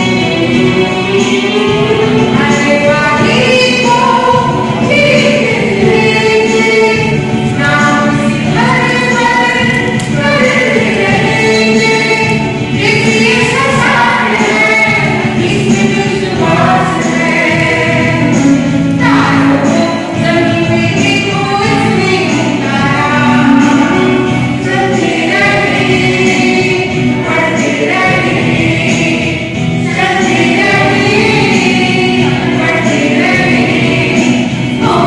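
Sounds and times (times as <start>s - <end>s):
group singing in unison: 0.0s - 35.0s.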